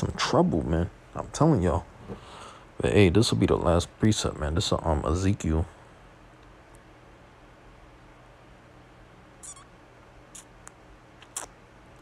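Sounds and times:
faint low hum: 0.0 - 12.0
high squeak: 9.4 - 9.7.

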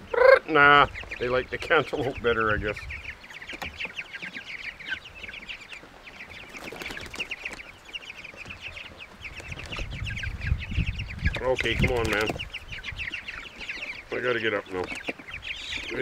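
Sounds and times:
chicks cheeping: 0.0 - 16.0.

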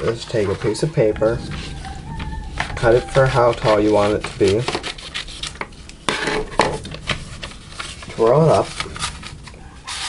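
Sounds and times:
scissors cutting paper: 2.0 - 6.3.

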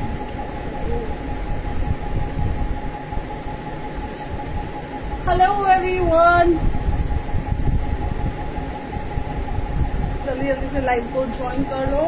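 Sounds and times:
mechanical hum with whine: 0.0 - 12.0
woman speaking: 5.2 - 6.6, 10.2 - 12.0.

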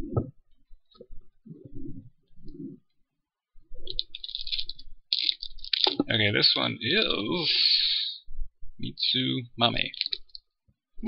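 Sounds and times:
plastic packaging crinkling: 3.9 - 6.0.

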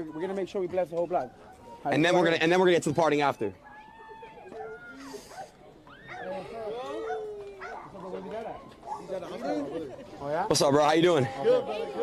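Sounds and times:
people's voices: 0.0 - 12.0
dog barking: 6.1 - 6.3, 7.0 - 9.2.

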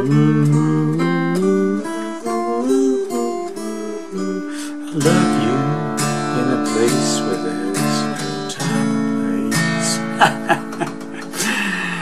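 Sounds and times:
acoustic guitar strums: 0.0 - 12.0.

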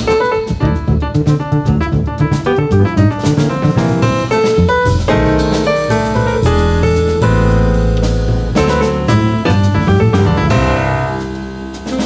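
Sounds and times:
double bass: 0.0 - 12.0
drum kit: 0.0 - 12.0
jazz piano: 0.0 - 12.0.

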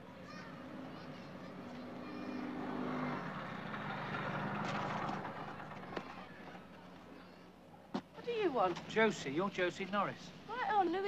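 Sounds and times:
moped engine: 0.3 - 7.0.

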